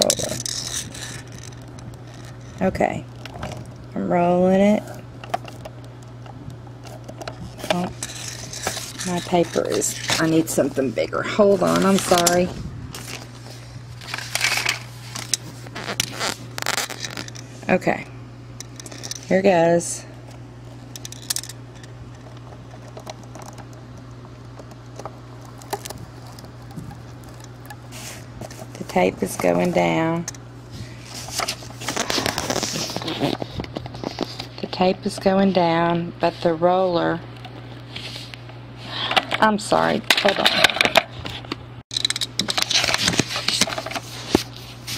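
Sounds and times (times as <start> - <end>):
steady low hum: 0.0 - 44.9
tape gun crackling across paper: 5.0 - 10.9, 11.5 - 17.5, 20.9 - 30.4, 31.0 - 34.7.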